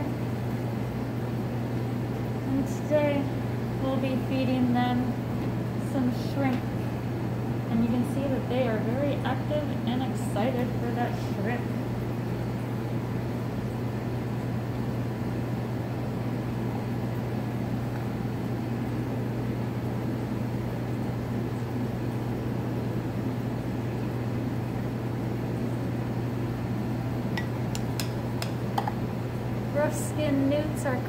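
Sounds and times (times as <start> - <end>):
low mechanical hum: 0.0 - 31.0.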